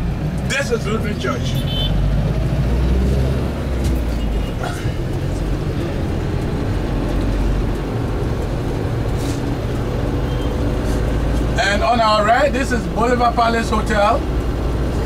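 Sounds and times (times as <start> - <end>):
engine and road noise rumble: 0.0 - 15.0.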